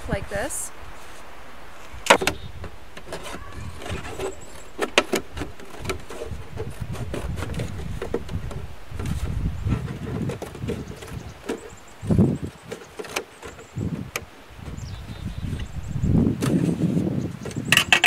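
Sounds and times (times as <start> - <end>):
plastic jug clicking and crackling: 2.0 - 11.7, 12.4 - 14.3, 17.4 - 18.0.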